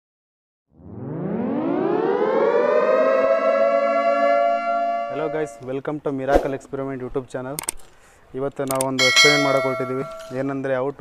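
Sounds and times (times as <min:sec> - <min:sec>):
air raid siren wailing: 0:00.8 - 0:05.7.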